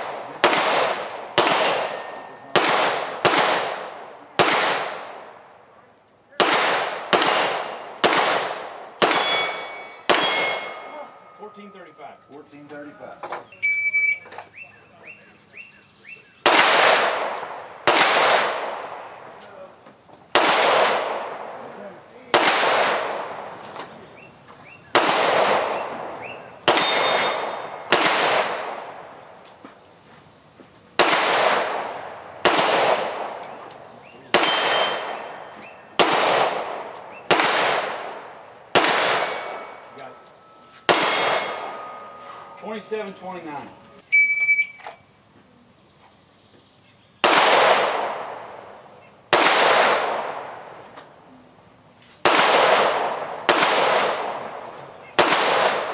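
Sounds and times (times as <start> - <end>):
pistol shots echoing: 0.0 - 5.4, 6.4 - 11.8, 16.4 - 19.4, 20.3 - 23.8, 24.9 - 29.2, 31.0 - 43.0, 47.2 - 50.7, 52.2 - 55.9
steel plates ringing: 9.1 - 12.1.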